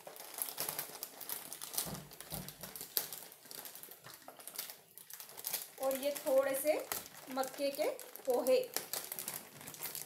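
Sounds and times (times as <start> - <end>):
woman speaking: 5.8 - 8.8.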